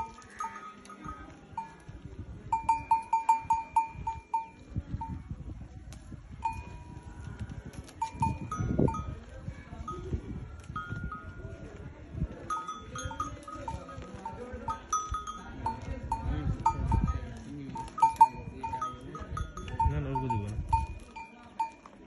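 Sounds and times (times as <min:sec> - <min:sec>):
camel browsing on branches: 0:00.0 - 0:02.0, 0:05.8 - 0:22.0
small camel bells clinking: 0:00.0 - 0:22.0.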